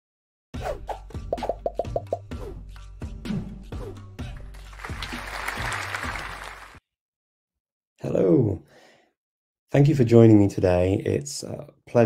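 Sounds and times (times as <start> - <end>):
background music: 0.6 - 6.8.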